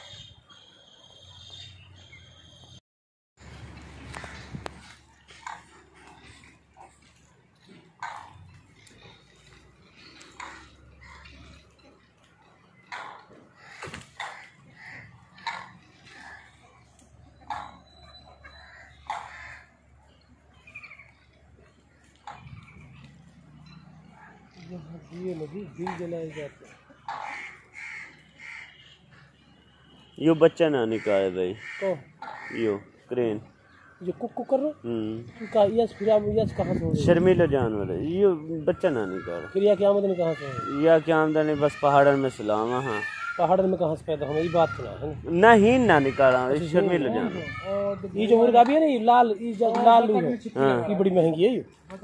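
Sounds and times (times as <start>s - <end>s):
waterfowl calling: 3.9s - 37.2s.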